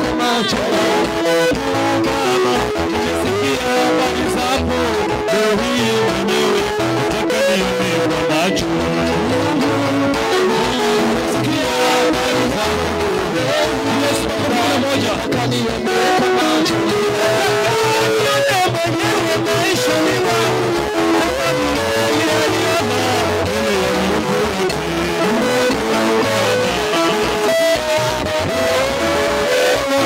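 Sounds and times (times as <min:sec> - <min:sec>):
electric guitar line: 0:00.0 - 0:30.0
live worship band music: 0:00.0 - 0:30.0.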